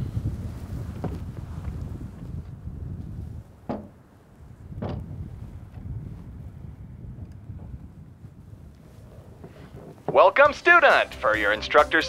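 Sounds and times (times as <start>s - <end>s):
wind rumbling on microphone: 0.0s - 10.8s
recorder knocking on car roof: 3.7s - 3.9s.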